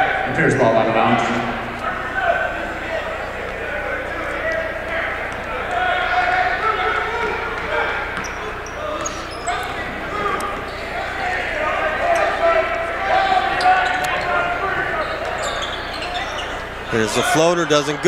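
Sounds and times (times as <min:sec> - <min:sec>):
crowd chatter and calls: 0:00.0 - 0:18.0.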